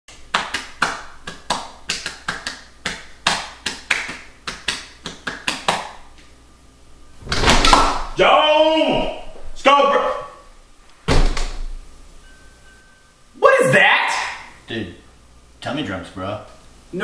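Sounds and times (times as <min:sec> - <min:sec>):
hands slapping bare belly: 0:00.3 - 0:06.0.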